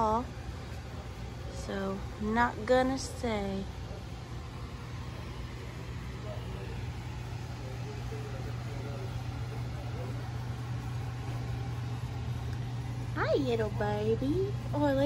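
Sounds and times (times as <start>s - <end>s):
faint voices: 0.0s - 15.0s
low hum: 0.0s - 15.0s.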